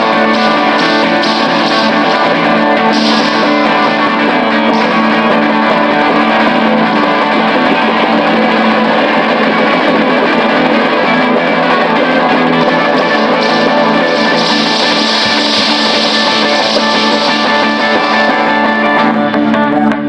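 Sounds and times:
rock band playing: 0:00.0 - 0:19.8
electric guitar: 0:00.0 - 0:20.0.

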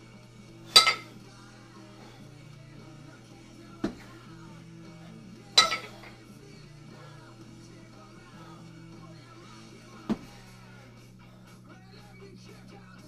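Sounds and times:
quiet rock music: 0:00.0 - 0:13.0
kettlebells clanking: 0:00.7 - 0:01.2, 0:05.6 - 0:06.2.

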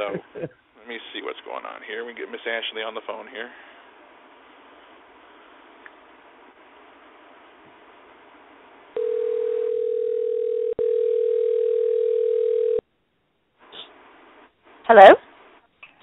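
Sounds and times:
steady phone tone: 0:09.0 - 0:12.8.

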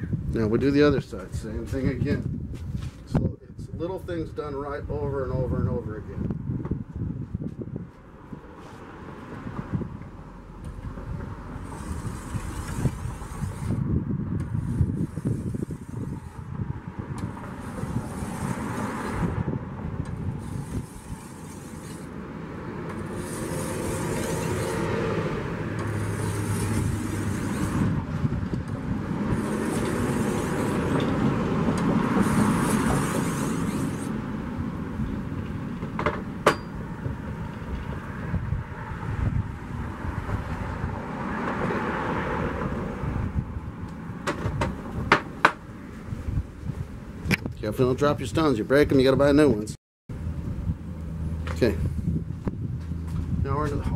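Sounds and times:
whetstone rasping along blade: 0:11.6 - 0:13.8, 0:20.4 - 0:22.1, 0:23.0 - 0:25.2, 0:25.8 - 0:27.9, 0:29.3 - 0:31.2, 0:32.1 - 0:34.2.

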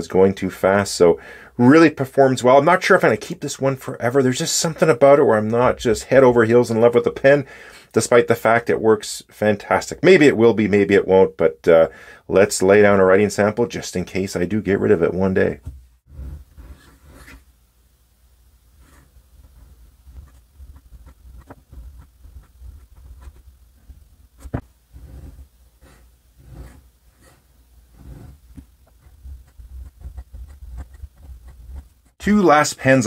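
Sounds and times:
faint low hum: 0:14.9 - 0:33.0
pen nib scratching paper: 0:18.8 - 0:23.4, 0:24.4 - 0:32.2.

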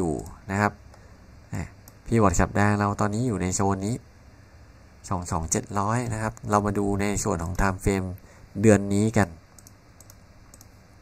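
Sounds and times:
faint computer mouse clicks: 0:09.6 - 0:10.8.

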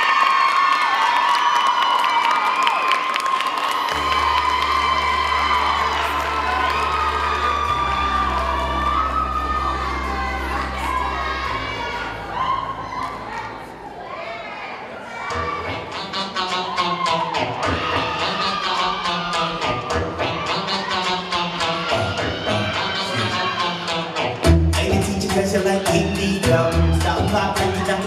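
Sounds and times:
audience cheering and screaming: 0:00.0 - 0:24.4
deep bass dance music: 0:03.9 - 0:12.4, 0:24.4 - 0:28.0.

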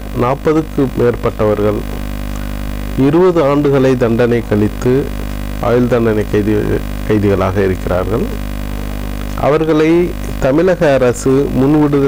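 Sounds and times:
electrical mains hum: 0:00.0 - 0:12.0
man speaking: 0:00.2 - 0:02.0, 0:03.0 - 0:08.4, 0:09.4 - 0:12.0.

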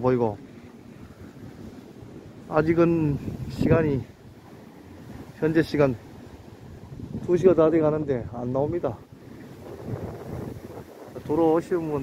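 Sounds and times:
sea waves: 0:00.0 - 0:12.0
wind buffeting microphone: 0:00.0 - 0:12.0.

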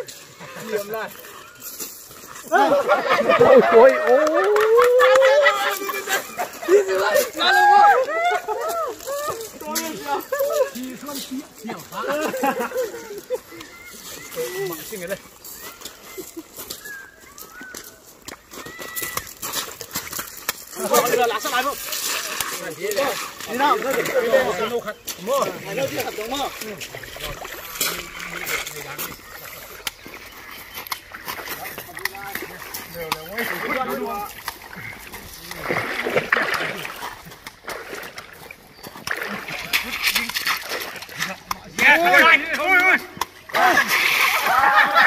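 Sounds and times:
men calling out: 0:02.4 - 0:15.3, 0:22.6 - 0:29.6, 0:41.2 - 0:45.0
whistled bird calls: 0:15.5 - 0:18.0.

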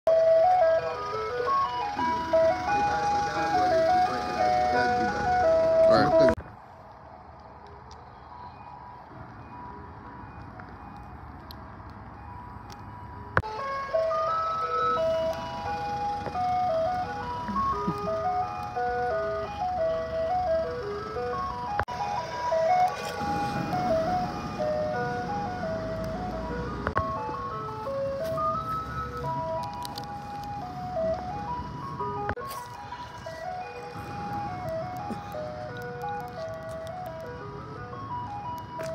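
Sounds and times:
ice cream van jingle: 0:00.1 - 0:06.4, 0:07.7 - 0:38.9
low vehicle rumble: 0:00.1 - 0:06.6, 0:08.9 - 0:38.9.

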